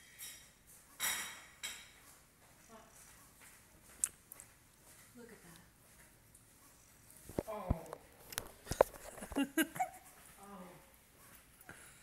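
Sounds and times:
person laughing: 0:09.0 - 0:10.2.

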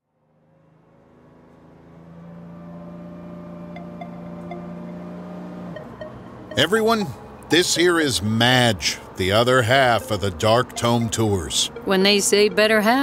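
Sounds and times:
vehicle engine humming: 0:00.1 - 0:13.0.

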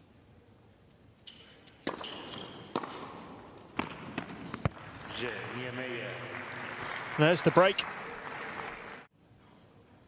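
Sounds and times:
tennis ball struck by rackets: 0:01.3 - 0:04.8.

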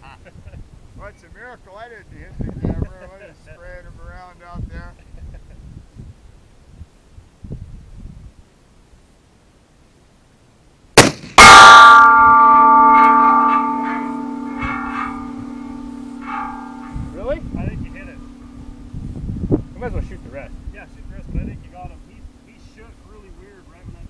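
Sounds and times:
pistol shot: 0:11.0 - 0:12.0
steel target plate clang: 0:11.0 - 0:23.9.

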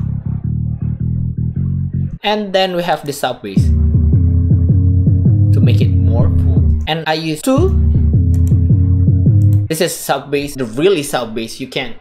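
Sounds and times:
short low bass notes: 0:00.0 - 0:02.2, 0:03.6 - 0:06.9, 0:07.6 - 0:09.7.

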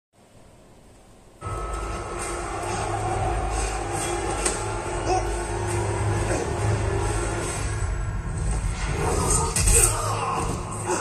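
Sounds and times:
film soundtrack music: 0:01.4 - 0:11.0.

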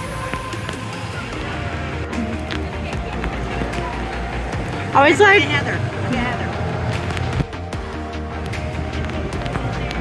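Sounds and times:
background music: 0:00.0 - 0:10.0
faint voices: 0:00.0 - 0:10.0
low rumble: 0:00.8 - 0:10.0.

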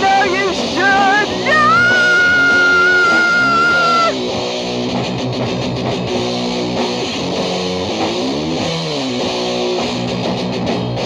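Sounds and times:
hardcore punk rock band: 0:00.0 - 0:11.0.

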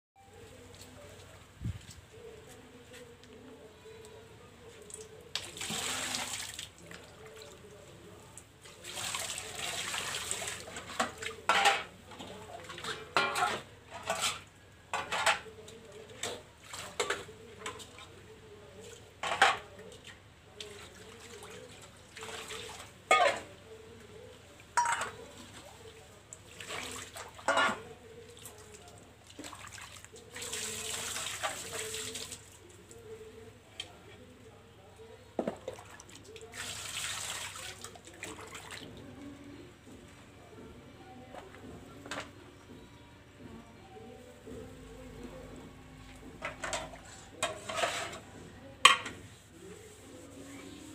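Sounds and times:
water pouring: 0:04.9 - 0:06.7, 0:08.8 - 0:11.2, 0:29.3 - 0:32.5, 0:35.7 - 0:38.6
metal dishes clinking: 0:12.9 - 0:14.4, 0:23.1 - 0:23.5, 0:24.8 - 0:25.2.

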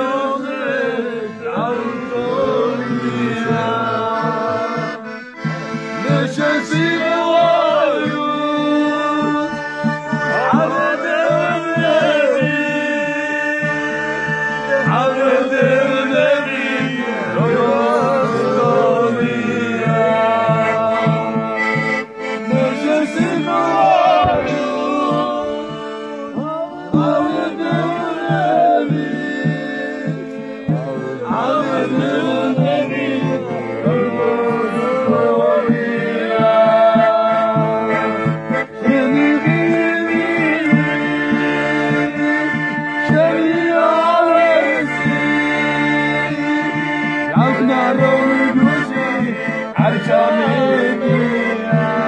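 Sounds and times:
button accordion: 0:00.0 - 0:52.0
men singing together: 0:00.0 - 0:52.0
hand drum beating: 0:01.5 - 0:45.3.

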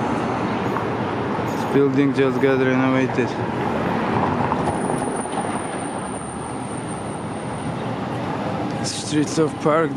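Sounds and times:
city street traffic: 0:00.0 - 0:09.9
high-pitched whine: 0:03.6 - 0:09.9.

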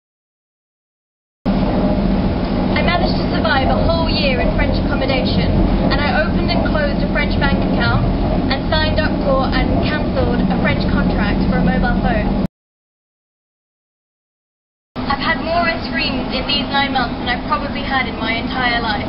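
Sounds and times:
steady low hum: 0:01.5 - 0:12.5, 0:15.0 - 0:19.0
woman talking: 0:02.8 - 0:12.5, 0:15.1 - 0:19.0.

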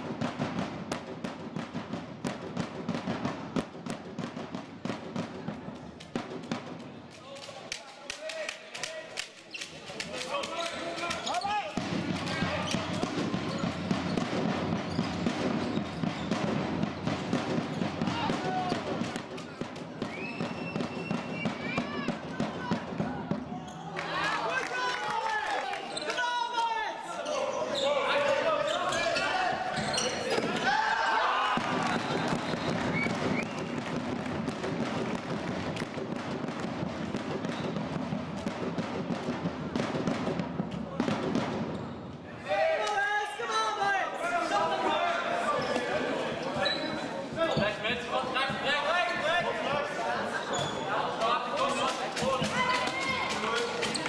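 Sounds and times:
people shouting and chattering: 0:04.4 - 0:35.8, 0:40.6 - 0:54.0.

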